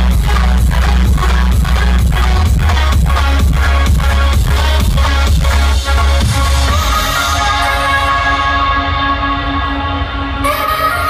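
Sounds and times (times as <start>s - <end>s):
loud live music: 0.0s - 11.0s.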